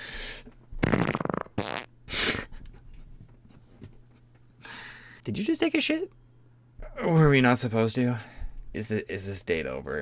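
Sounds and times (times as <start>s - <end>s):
comic fart sound: 0.8s - 1.9s.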